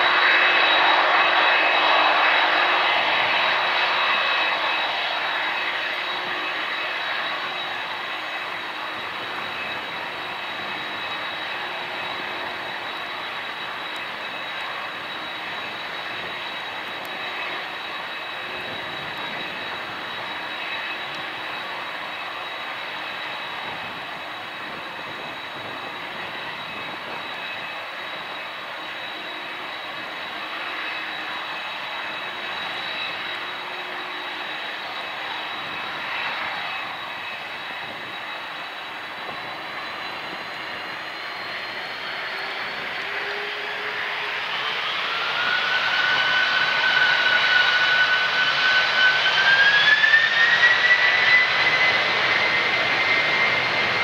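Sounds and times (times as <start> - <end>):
jet engines whining: 0.0 - 54.0.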